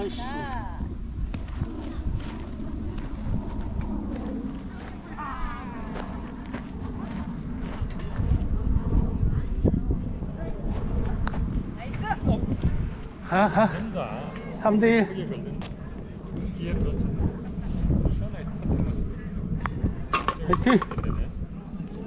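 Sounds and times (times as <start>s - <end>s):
wind buffeting microphone: 0.0s - 22.0s
faint voices: 1.7s - 12.3s.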